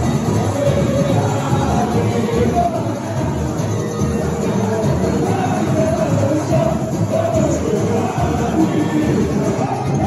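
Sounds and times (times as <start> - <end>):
group singing: 0.0 - 10.0
loud live samba music: 0.0 - 10.0.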